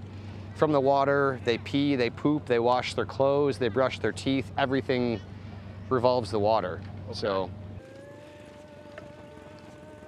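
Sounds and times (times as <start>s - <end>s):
flying insect buzzing: 7.8s - 10.0s.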